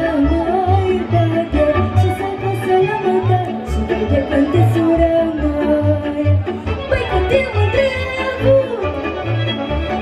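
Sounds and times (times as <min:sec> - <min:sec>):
fiddle melody: 0:00.0 - 0:10.0.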